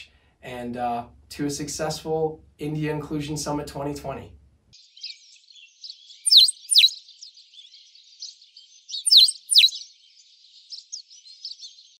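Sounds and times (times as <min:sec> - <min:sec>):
sharp downward-sweeping chirps: 0:04.8 - 0:07.2, 0:08.2 - 0:10.0
birds twittering: 0:04.8 - 0:12.0.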